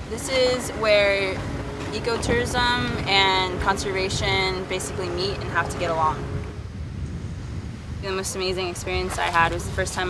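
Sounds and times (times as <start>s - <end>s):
low rumbling outdoor background: 0.0s - 10.0s.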